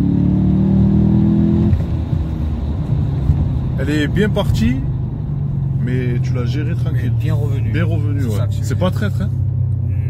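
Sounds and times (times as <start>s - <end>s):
car engine pulling hard: 0.0s - 10.0s
road noise: 0.0s - 10.0s
low engine rumble: 1.6s - 10.0s.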